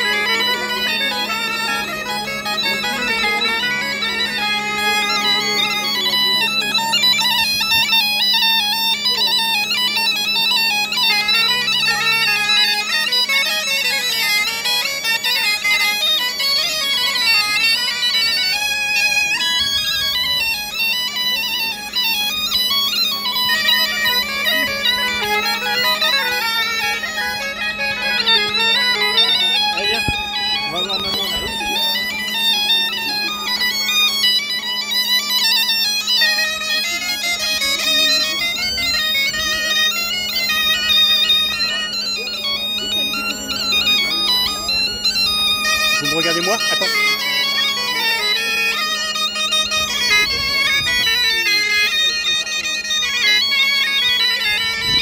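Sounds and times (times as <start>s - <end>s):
bagpipe drone: 0.0s - 55.0s
high reedy melody: 0.0s - 55.0s.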